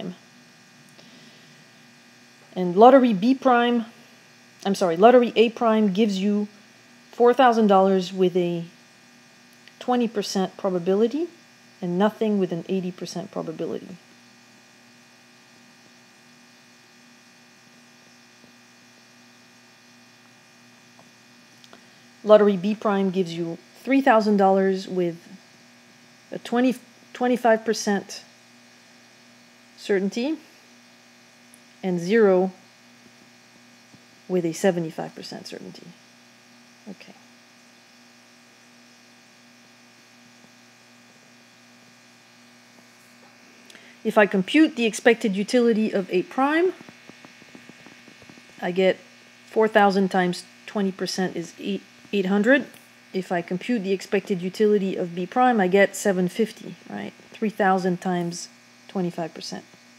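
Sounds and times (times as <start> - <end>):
faint electrical hum: 0.0 - 59.9.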